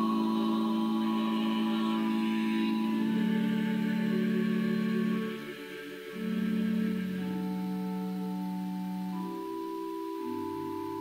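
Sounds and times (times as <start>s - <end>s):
vocal ensemble singing slowly: 0.0s - 11.0s.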